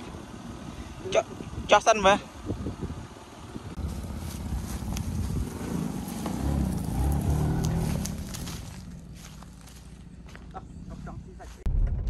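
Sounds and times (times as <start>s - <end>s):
car engine pulling away: 0.0s - 11.2s
light crackles: 3.8s - 10.0s.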